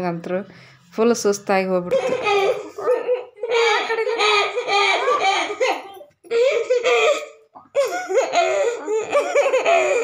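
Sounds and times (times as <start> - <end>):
women laughing: 2.0 - 7.2, 7.8 - 10.0.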